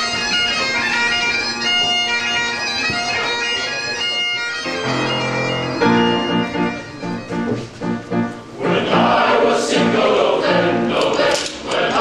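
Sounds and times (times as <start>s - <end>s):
bagpipes playing over drones: 0.0s - 8.3s
boys' choir singing held chord: 8.4s - 12.0s.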